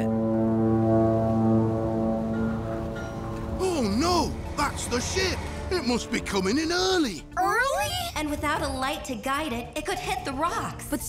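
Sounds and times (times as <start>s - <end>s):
ship's horn long low blast: 0.0s - 6.8s.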